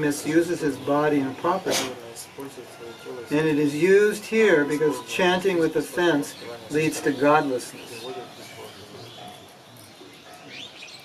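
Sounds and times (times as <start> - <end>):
faint bird chirps: 0.6 - 11.0.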